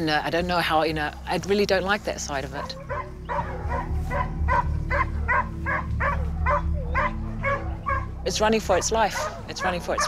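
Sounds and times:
hounds baying: 2.5 - 10.0.

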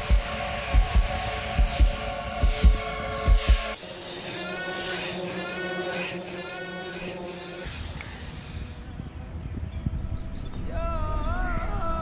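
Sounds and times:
heartbeat thumps: 0.0 - 3.8
high hissing with warbling sweeps: 0.0 - 9.2
droning music chord: 0.0 - 9.5.

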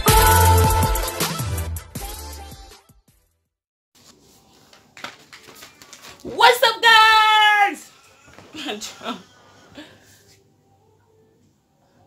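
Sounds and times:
paper rustling: 4.0 - 6.4.

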